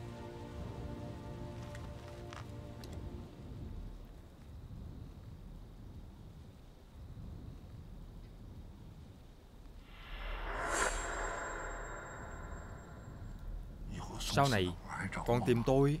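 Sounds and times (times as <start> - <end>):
faint low rumble: 3.0 - 16.0
rush of noise: 9.8 - 14.0.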